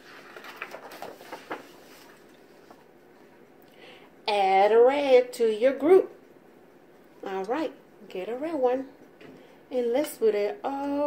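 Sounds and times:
paper page rustling and turning: 0.0 - 2.8.

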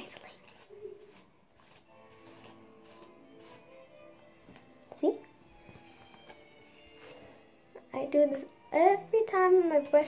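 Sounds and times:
hairbrush swishing through hair: 0.0 - 3.9
faint background music: 0.0 - 10.0.

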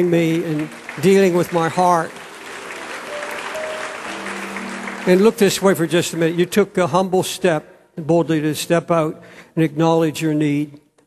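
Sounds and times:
crowd applauding: 0.0 - 6.6
soft background music: 3.0 - 6.3.

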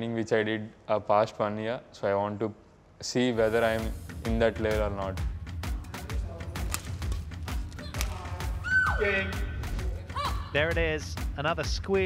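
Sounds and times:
background music with steady beat: 3.2 - 12.0
woman squealing: 7.8 - 9.2, 10.1 - 10.6.

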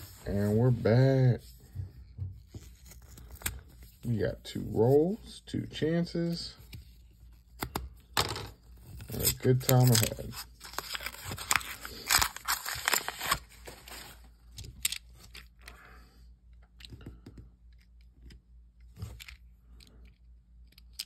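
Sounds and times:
paper wrapper tearing and crinkling: 8.9 - 14.2.

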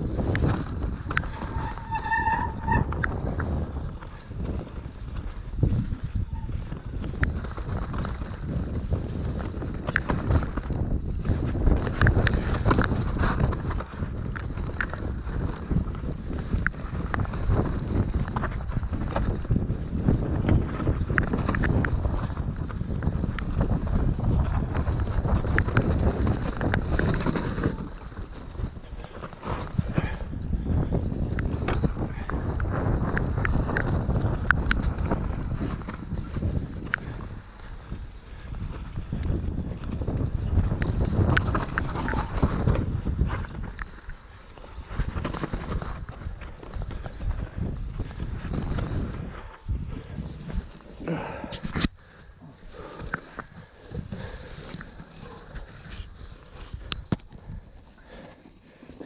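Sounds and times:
bike tyre rumble on dirt: 0.0 - 59.0
wind buffeting microphone: 0.0 - 59.0.

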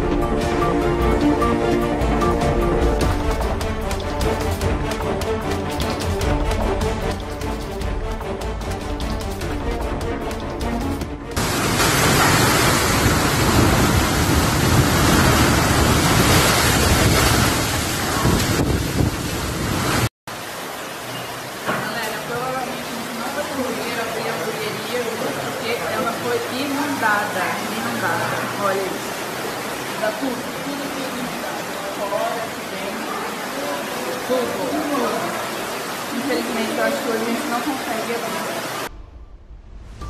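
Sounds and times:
floodwater rushing down street: 0.0 - 38.9
wind and heavy rain: 0.0 - 40.0.

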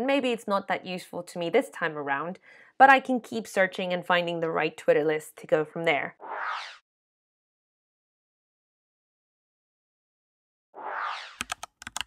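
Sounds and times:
short rising whoosh: 6.2 - 6.8, 10.8 - 11.5.

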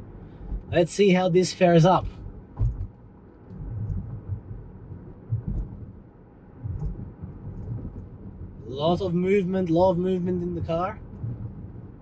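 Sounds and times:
tyre and suspension thuds: 2.0 - 3.0
car driving over rocky road: 2.0 - 6.0, 6.6 - 8.6.

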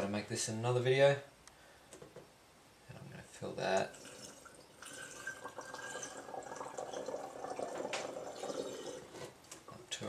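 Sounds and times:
liquid trickling into glass jar: 3.7 - 9.2.

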